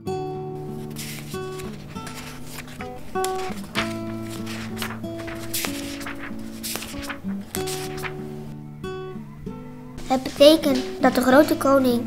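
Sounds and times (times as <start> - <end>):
acoustic guitar music: 0.0 - 12.0.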